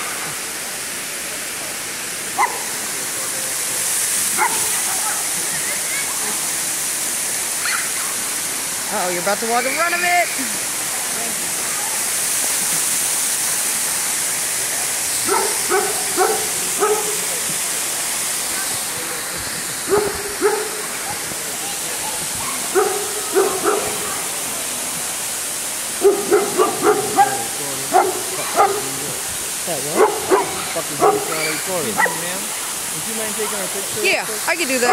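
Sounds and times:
waterfall rushing: 0.0 - 34.9
dog barking: 2.4 - 2.7, 4.3 - 5.2, 15.2 - 17.3, 19.9 - 20.8, 22.4 - 24.2, 26.0 - 29.2, 29.9 - 32.3.

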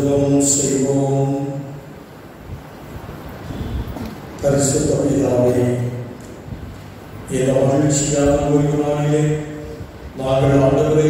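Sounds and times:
quiet hall hum: 0.0 - 11.0.

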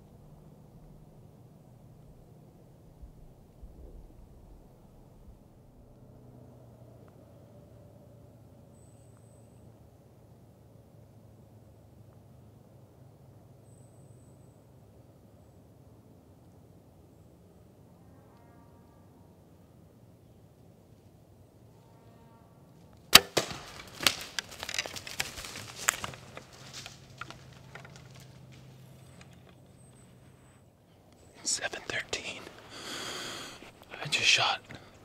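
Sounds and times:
deer crashing through brush: 23.1 - 28.9
bow release and arrow strike: 23.2 - 24.8.

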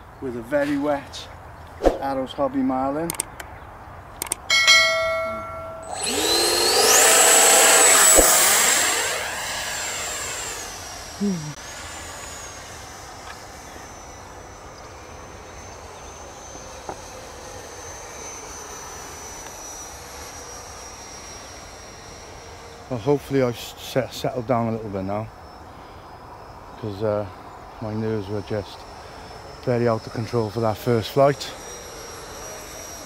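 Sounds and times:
electric ducted fan whine: 0.0 - 33.0.

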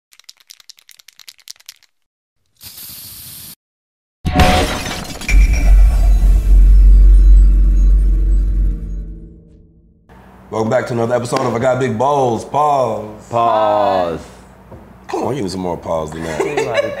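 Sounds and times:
short hiss: 2.6 - 3.6
shattering crash: 4.3 - 8.6
deep bass hit: 5.3 - 10.0.

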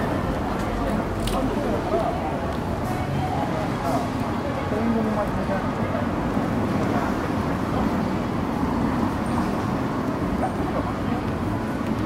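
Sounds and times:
faint voices of passers-by: 0.0 - 12.0
road traffic rumble: 0.0 - 12.0.

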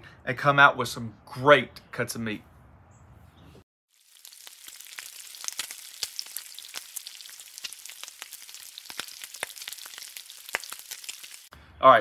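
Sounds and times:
food frying on griddle: 3.9 - 11.5.

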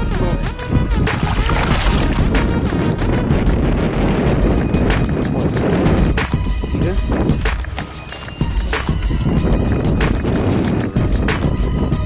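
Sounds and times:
music playing: 0.0 - 12.0
wind noise: 0.0 - 12.0
water splashing: 1.0 - 2.7.

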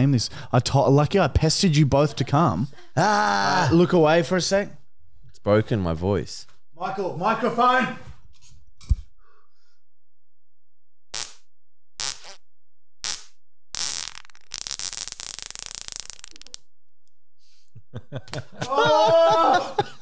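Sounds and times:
person farting: 11.1 - 12.4, 13.0 - 16.7.

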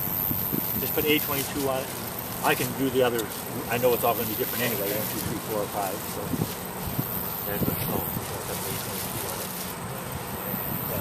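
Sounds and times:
wind on microphone: 0.0 - 1.6, 3.6 - 9.4, 10.1 - 11.0
faint low voices: 0.8 - 11.0.

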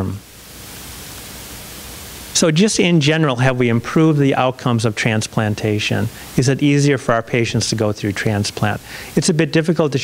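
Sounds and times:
steady background hiss: 0.0 - 10.0
man speaking: 2.4 - 10.0.

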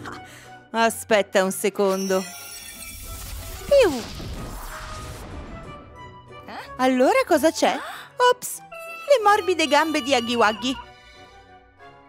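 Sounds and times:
light background music: 0.0 - 12.0
magic spell shimmering rush: 2.0 - 5.5.

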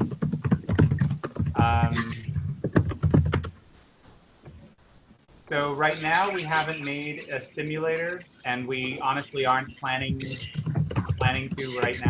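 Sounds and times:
computer keyboard typing: 0.0 - 3.5, 10.0 - 12.0.

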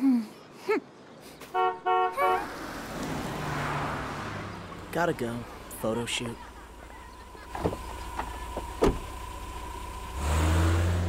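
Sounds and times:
car engine rumbling: 1.6 - 11.0.

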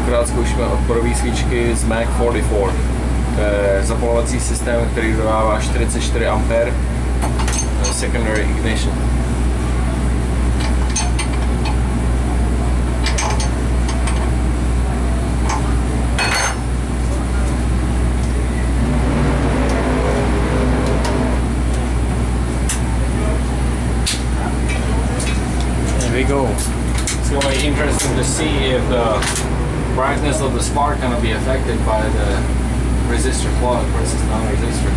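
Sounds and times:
steady low hum: 0.0 - 34.9.

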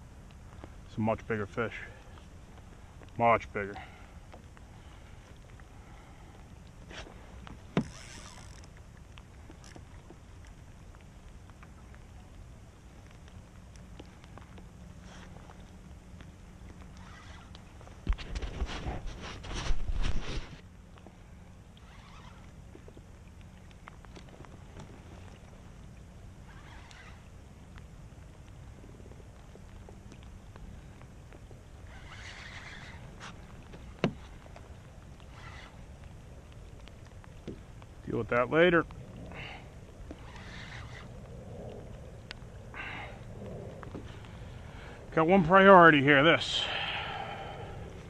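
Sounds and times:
low wind rumble on microphone: 4.0 - 48.0
light ticks: 8.2 - 17.9, 21.7 - 38.1, 40.0 - 42.5
soft hissing sounds: 14.0 - 17.7, 30.0 - 36.2, 38.5 - 48.0.

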